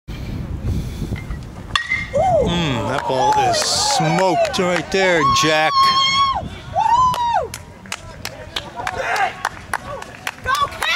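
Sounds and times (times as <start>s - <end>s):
metal bat hitting ball: 1.7s - 2.2s.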